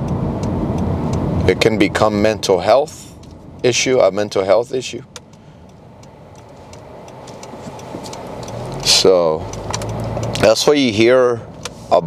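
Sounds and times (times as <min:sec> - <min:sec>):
faint light ticks: 0:00.0 - 0:01.5, 0:05.1 - 0:10.6
car engine and road hum: 0:00.0 - 0:12.0.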